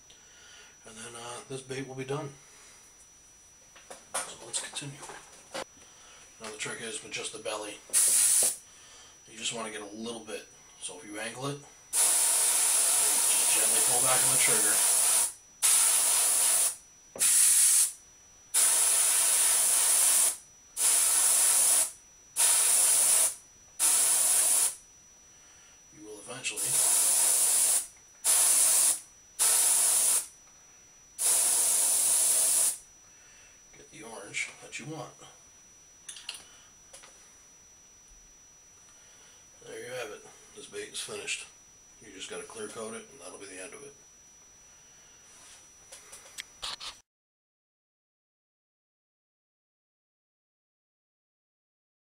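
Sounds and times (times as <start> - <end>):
faint high whine: 0.0 - 47.0
airbrush spraying paint: 7.9 - 8.6, 11.9 - 24.8, 26.6 - 30.3, 31.2 - 32.8.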